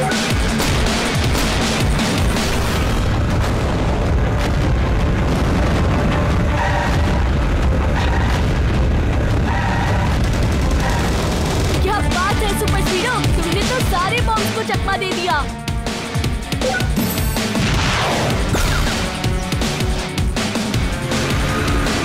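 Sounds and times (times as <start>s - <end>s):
background music: 0.0s - 22.0s
deep rumble: 0.6s - 14.0s.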